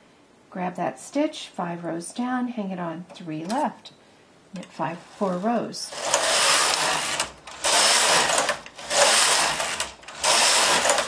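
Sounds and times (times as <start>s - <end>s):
knitting machine carriage sliding: 4.6s - 11.0s.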